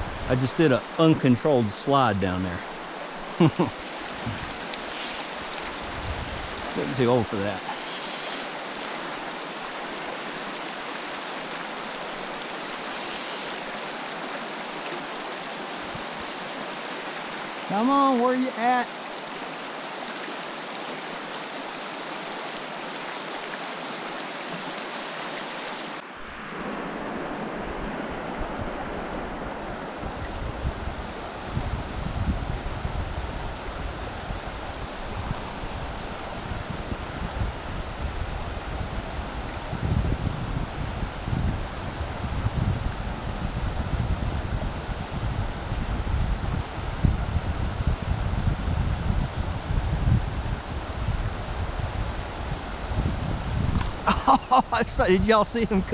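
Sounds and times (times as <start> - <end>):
creek water rushing over rocks: 0.0 - 31.6, 53.6 - 55.9
wind buffeting microphone: 4.0 - 7.7, 26.2 - 55.9.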